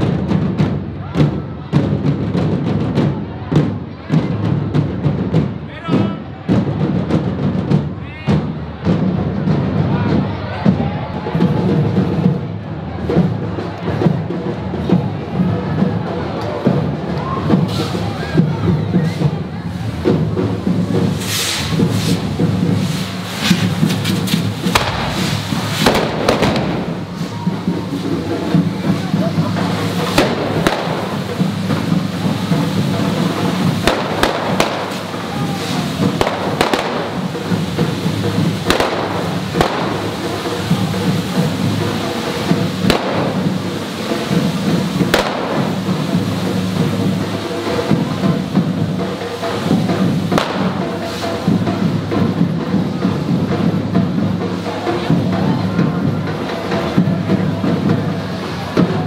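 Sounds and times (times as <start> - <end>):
drums and percussion: 0.0 - 59.0
firework sprays fizzing: 14.8 - 59.0
sharp bangs: 21.2 - 28.9, 29.6 - 40.8, 42.8 - 44.4, 45.0 - 46.3, 50.3 - 51.2.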